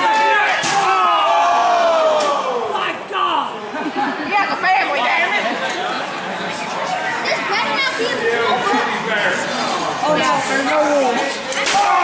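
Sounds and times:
spectators shouting: 0:00.0 - 0:03.7, 0:11.5 - 0:12.0.

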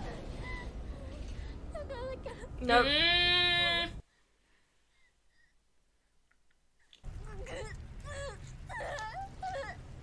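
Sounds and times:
woman whimpering cries: 0:07.3 - 0:10.0.

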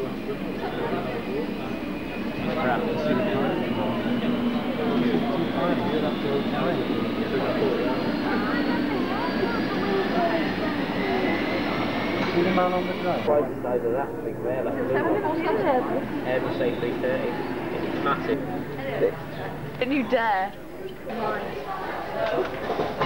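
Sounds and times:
faint high whine rising: 0:00.0 - 0:14.9, 0:15.8 - 0:19.7
indistinct chatter of voices: 0:00.0 - 0:23.0.

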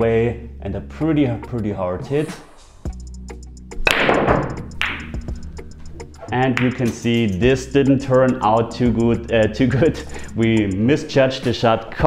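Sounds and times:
background music: 0:00.0 - 0:12.0
pool cue striking ball: 0:03.8 - 0:05.2
pool balls colliding: 0:03.8 - 0:05.3, 0:06.0 - 0:07.1.

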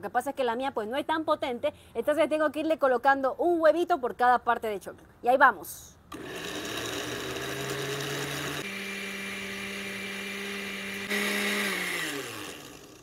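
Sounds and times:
blender running: 0:06.1 - 0:13.0.

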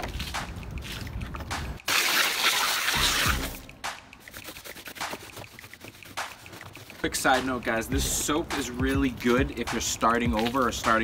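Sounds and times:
water dripping and trickling: 0:00.0 - 0:11.0
hose spraying into plastic pool: 0:01.8 - 0:03.6.

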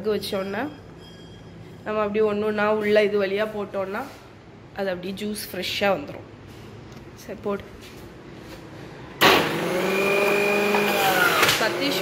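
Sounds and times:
mixer grinder motor whining: 0:09.2 - 0:12.0.

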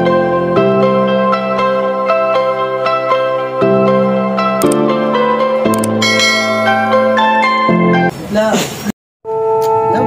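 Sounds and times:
soft intro music: 0:00.1 - 0:08.1
bright bell chime: 0:06.0 - 0:07.7.

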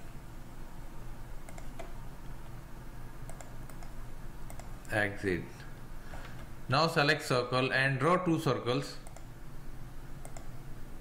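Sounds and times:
low steady hum: 0:00.0 - 0:11.0
computer mouse clicking: 0:01.4 - 0:02.0, 0:03.3 - 0:04.8, 0:09.0 - 0:09.3, 0:10.2 - 0:10.6.

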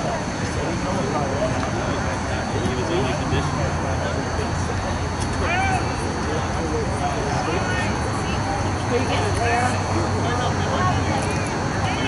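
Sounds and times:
steady outdoor rumble: 0:00.0 - 0:12.0
distant players shouting: 0:05.4 - 0:06.1.

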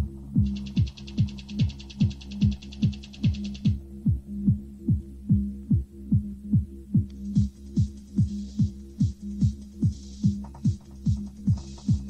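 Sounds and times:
hi-hats: 0:00.0 - 0:12.0
techno kick drum: 0:00.3 - 0:12.0.

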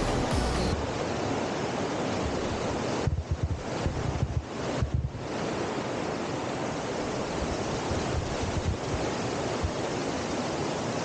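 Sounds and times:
stream rushing over rocks: 0:00.0 - 0:11.0
wind buffeting microphone: 0:02.0 - 0:05.6, 0:07.4 - 0:10.0.

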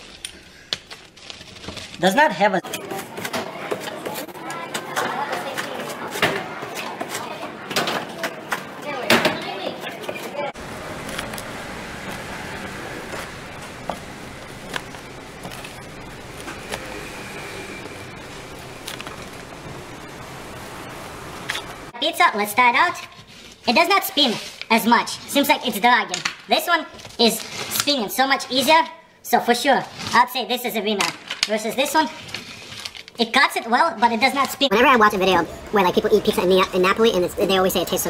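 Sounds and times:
indistinct voices: 0:02.0 - 0:21.9, 0:34.0 - 0:38.0
rolling cutter wheel: 0:10.5 - 0:21.9.

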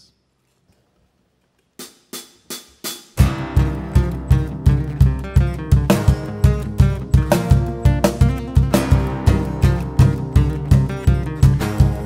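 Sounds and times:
cajon beat: 0:01.8 - 0:12.0
strummed acoustic guitars: 0:03.2 - 0:12.0.

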